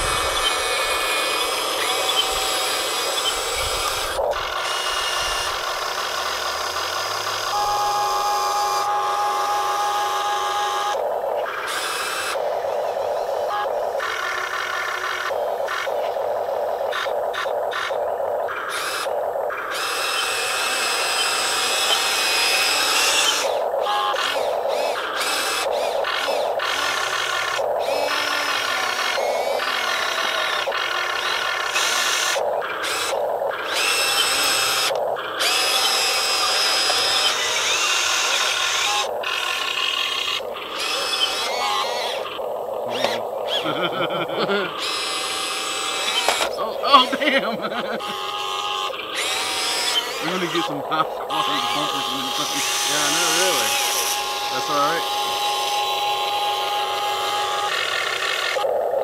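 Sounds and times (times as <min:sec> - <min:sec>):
electric motors and gearboxes whining: 0:00.0 - 0:59.0.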